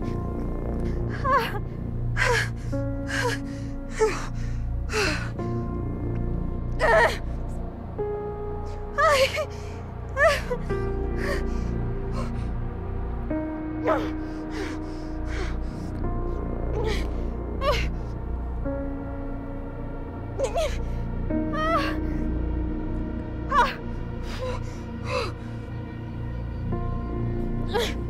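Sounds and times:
slow dramatic background music: 0:00.0 - 0:28.0
woman gasping and moaning in pain: 0:00.0 - 0:28.0.

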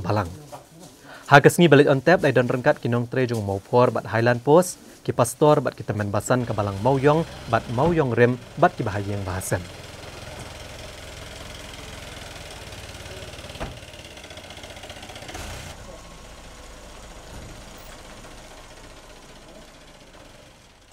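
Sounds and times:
vehicle engines idling: 0:00.0 - 0:20.9.

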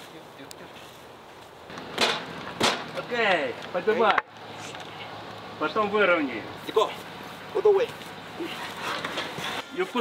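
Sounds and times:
sharp knocks of wooden pole: 0:01.7 - 0:02.9.

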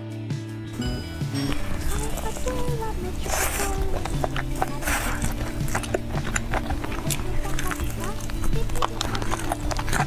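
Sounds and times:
background music: 0:00.0 - 0:10.0
crunching fried chicken: 0:01.5 - 0:10.0.

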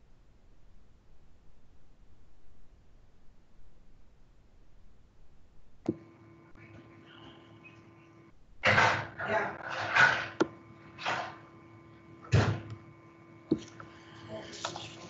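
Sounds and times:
electrical hum: 0:00.0 - 0:15.0.

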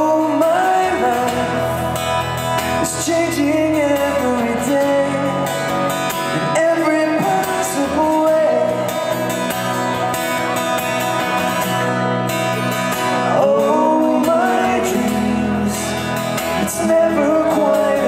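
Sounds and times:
man singing: 0:00.0 - 0:09.3, 0:13.0 - 0:18.0
strummed acoustic guitar: 0:00.0 - 0:18.0.

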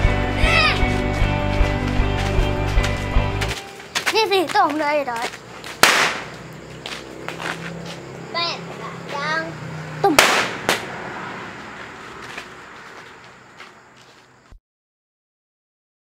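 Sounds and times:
people calling out: 0:00.3 - 0:01.0
firecrackers banging: 0:05.1 - 0:09.2, 0:10.0 - 0:12.8.

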